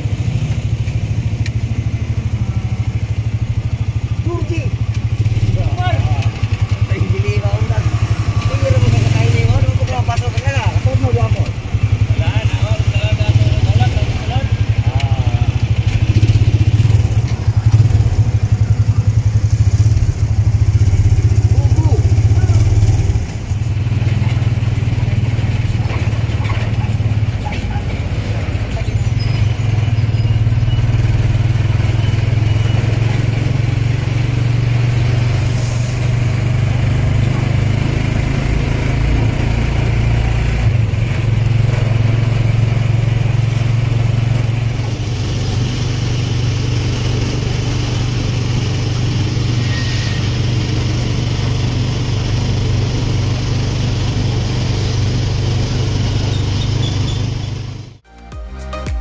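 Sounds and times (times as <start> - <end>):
motorcycle engine running: 0.0 - 58.1
road and traffic noise: 0.0 - 59.0.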